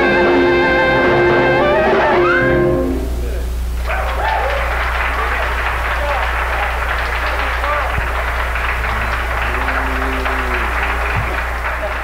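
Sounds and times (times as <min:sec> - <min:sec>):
low held note: 0:00.0 - 0:03.6
crowd noise: 0:00.0 - 0:12.0
steady low hum: 0:00.0 - 0:12.0
audience applause: 0:03.8 - 0:12.0.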